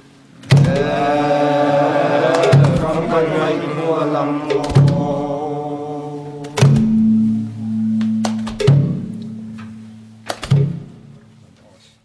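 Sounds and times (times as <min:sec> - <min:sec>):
held chanted note: 0:00.7 - 0:10.3
wooden barrel drum beats: 0:02.3 - 0:03.2, 0:04.5 - 0:05.2, 0:06.6 - 0:09.2.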